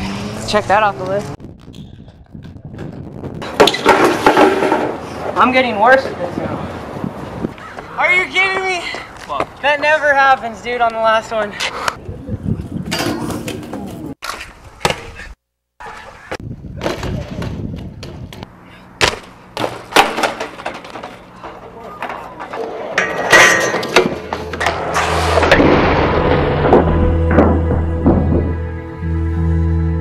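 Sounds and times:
wheels rolling on concrete: 0.4s - 9.6s, 19.6s - 25.6s
bike grinding on metal handrail: 3.4s - 5.2s, 19.1s - 28.8s
hard landings knocking: 19.0s - 28.7s
low music: 25.1s - 30.0s.

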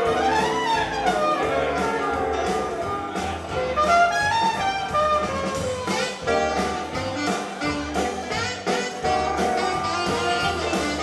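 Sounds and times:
bass line: 0.0s - 11.0s
saxophone and trumpet horn line: 0.0s - 11.0s
steady drum beat: 0.0s - 11.0s.

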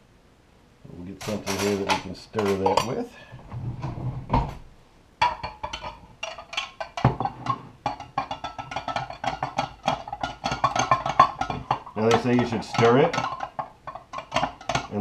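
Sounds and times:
metal utensil clinking glass jar: 1.2s - 3.0s, 5.2s - 15.0s.

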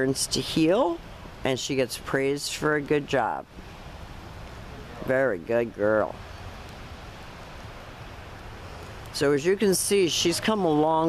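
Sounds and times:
light rain hissing: 0.0s - 11.0s.

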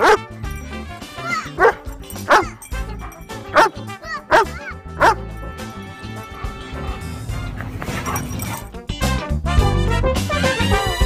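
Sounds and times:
dog barking: 0.0s - 0.3s, 1.2s - 5.8s, 7.6s - 8.8s
background music: 0.0s - 11.0s.

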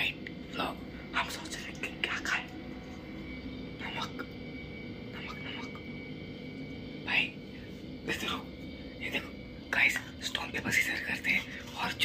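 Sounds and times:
young man whispering: 0.0s - 2.6s, 3.8s - 4.4s, 5.0s - 5.9s, 7.0s - 7.4s, 8.0s - 12.0s.

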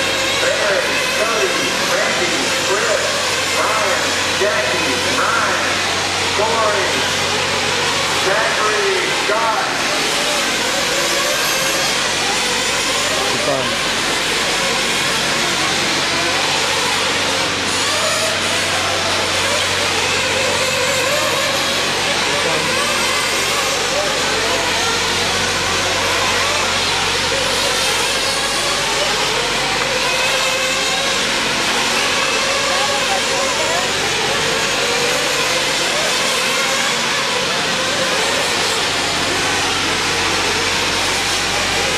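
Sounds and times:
people's voices: 0.0s - 41.9s
rc car motors revving: 0.0s - 41.9s.

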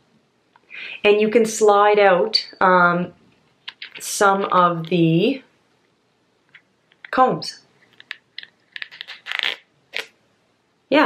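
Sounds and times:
plastic brush clicks and rattles: 7.8s - 9.5s.

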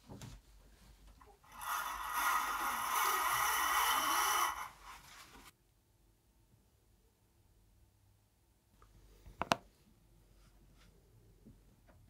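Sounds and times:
curtain scraping along rail: 1.4s - 5.5s.

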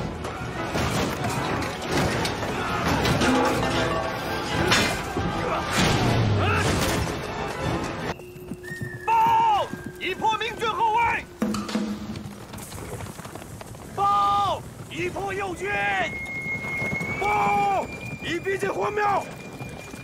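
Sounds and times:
battle commotion: 0.0s - 8.1s
clatter of hooves: 8.1s - 20.0s
horses whinnying: 15.9s - 18.4s.

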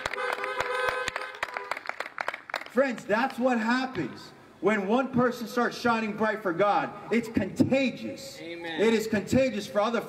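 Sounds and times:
car horns honking: 0.0s - 1.9s.

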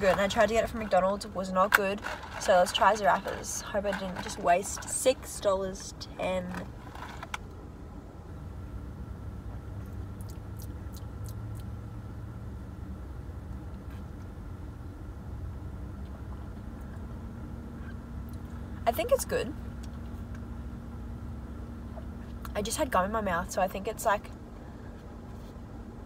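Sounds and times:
car engine idling: 0.0s - 26.0s.

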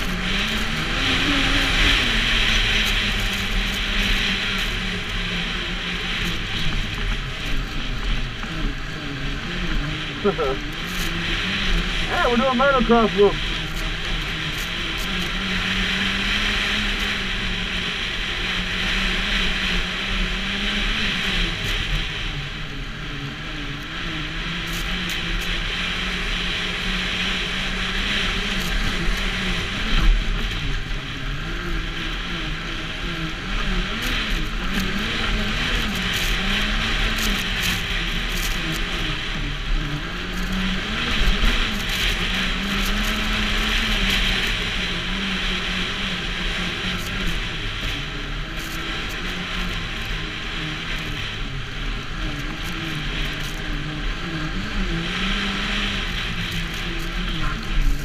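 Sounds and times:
snowmobile engine running: 0.0s - 58.0s.

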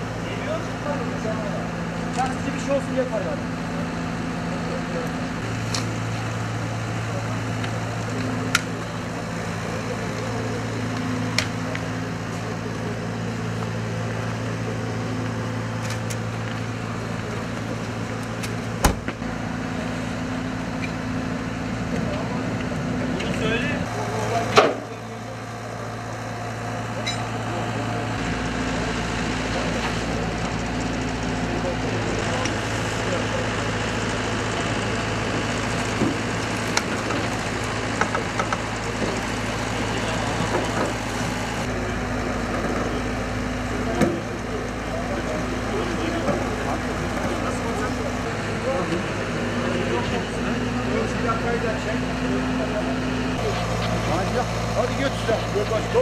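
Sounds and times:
faint voices: 0.0s - 56.0s
vehicle engine idling: 0.0s - 56.0s.

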